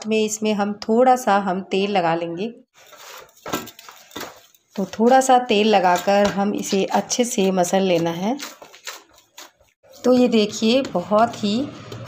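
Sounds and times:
hand kneading dough: 4.0 - 11.4.

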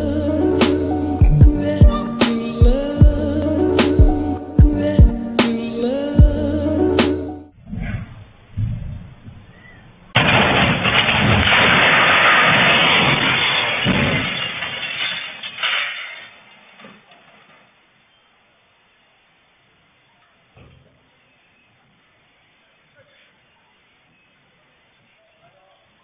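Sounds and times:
bus crashing: 8.6 - 17.5
crashing and clattering debris: 10.0 - 17.7.

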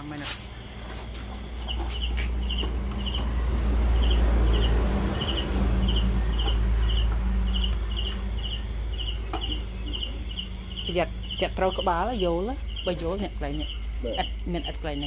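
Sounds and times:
insect chirping: 0.0 - 15.0
steady low rumble: 0.5 - 15.0.

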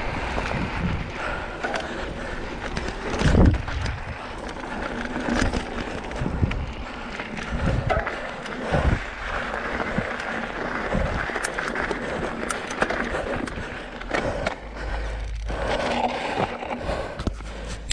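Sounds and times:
wind on microphone: 0.0 - 1.3, 3.2 - 4.3, 7.4 - 10.1
bike tyres crunching on gravel: 0.0 - 17.9.

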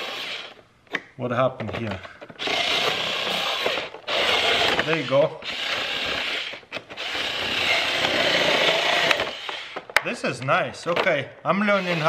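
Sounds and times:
electric scissors cutting plastic: 0.0 - 0.6, 2.4 - 9.9.

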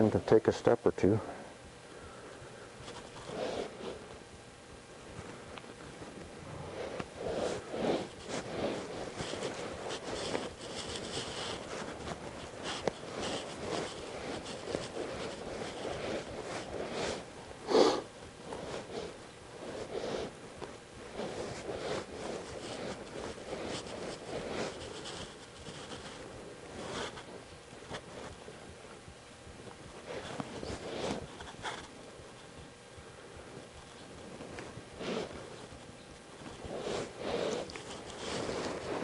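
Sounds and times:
horse breathing and blowing: 2.4 - 4.2, 5.2 - 27.5, 34.6 - 35.8, 36.5 - 39.0
horse snorting: 10.9 - 18.1.

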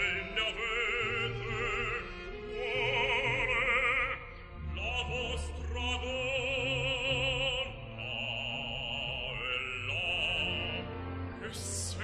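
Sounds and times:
operatic solo singing: 0.0 - 12.0
orchestra accompaniment: 10.4 - 12.0.

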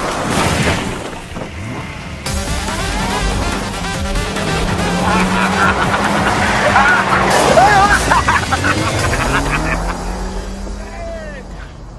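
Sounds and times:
car engine running hard: 1.2 - 11.9
background music: 1.6 - 10.6
people whooping and laughing: 5.0 - 10.2.

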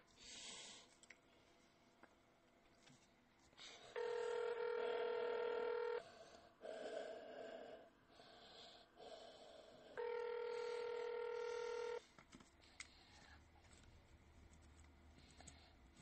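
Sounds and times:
telephone ringback tone: 4.0 - 6.0, 10.0 - 12.0.

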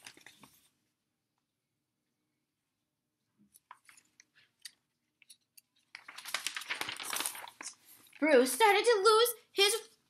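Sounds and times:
paper page rustling: 0.0 - 0.8, 5.2 - 8.3.

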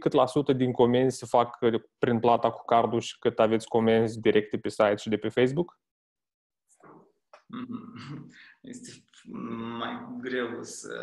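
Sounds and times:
man breathing: 8.3 - 8.7.

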